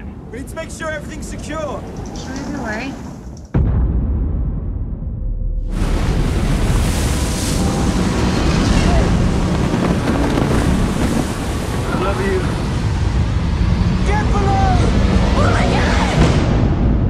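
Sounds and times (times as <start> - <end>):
ocean waves crashing: 0.0 - 3.5, 5.7 - 16.8
storm wind: 0.0 - 17.0.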